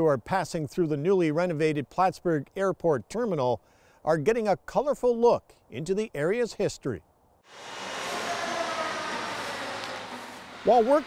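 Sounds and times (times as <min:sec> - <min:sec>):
construction site noise hiss: 0:07.5 - 0:11.0
faint machine whine: 0:07.5 - 0:11.0.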